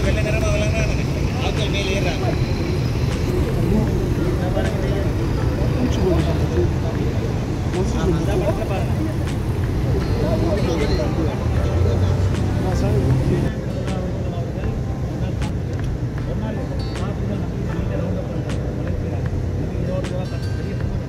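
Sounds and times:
people talking: 0:00.0 - 0:21.0
road traffic rumble: 0:00.0 - 0:21.0.

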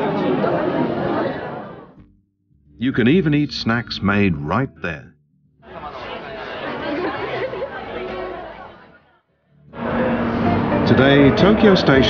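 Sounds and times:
crowd of shoppers chattering: 0:00.0 - 0:02.0, 0:05.6 - 0:12.0.

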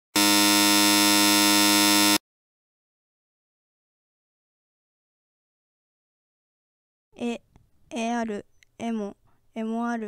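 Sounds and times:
steady electronic buzzer tone: 0:00.1 - 0:02.2.

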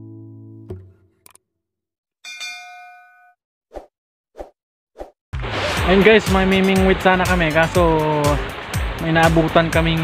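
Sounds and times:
bell-like ding: 0:02.2 - 0:03.4
background music: 0:05.4 - 0:10.0.

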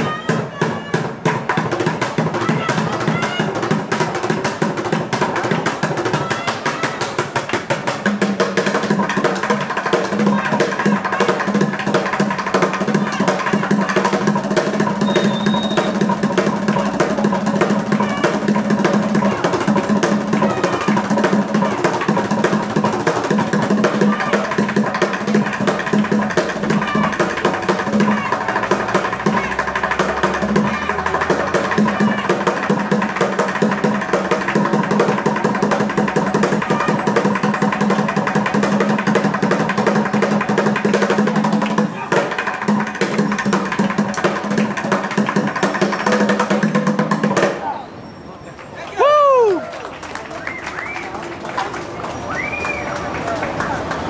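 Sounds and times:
drumming on plastic buckets: 0:00.0 - 0:47.7
crowd voices: 0:00.0 - 0:54.0.

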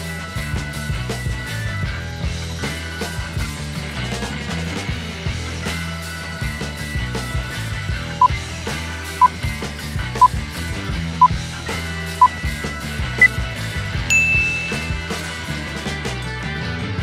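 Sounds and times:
background music: 0:00.0 - 0:17.0
countdown timer beeps: 0:14.1 - 0:15.2
long high tone: 0:14.1 - 0:15.3.

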